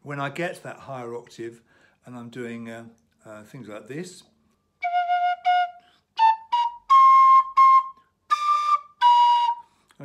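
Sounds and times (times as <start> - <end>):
tin whistle notes: 4.8 - 9.7.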